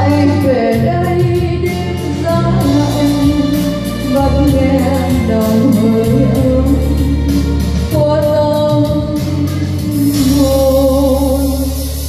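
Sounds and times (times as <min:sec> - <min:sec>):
instrumental backing with bass: 0:00.0 - 0:12.0
woman singing into a microphone: 0:00.0 - 0:12.0.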